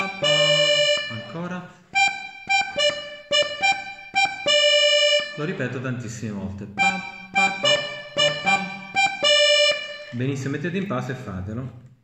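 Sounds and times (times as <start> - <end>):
button accordion short notes: 0.0 - 5.7, 6.8 - 10.2.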